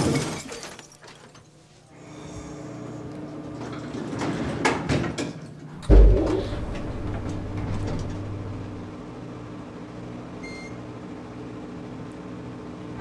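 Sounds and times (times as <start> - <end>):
elevator car humming: 5.8 - 9.0
elevator doors shutting: 5.8 - 9.0.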